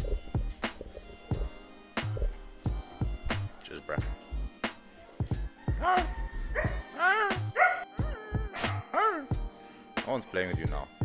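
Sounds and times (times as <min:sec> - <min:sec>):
background music with steady beat: 0:00.0 - 0:11.0
dog yipping: 0:05.8 - 0:09.3.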